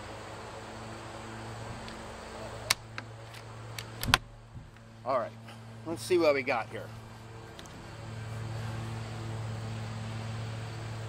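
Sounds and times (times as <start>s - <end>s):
low background hum: 0.0s - 11.0s
air rifle bolt clicking: 2.7s - 4.9s.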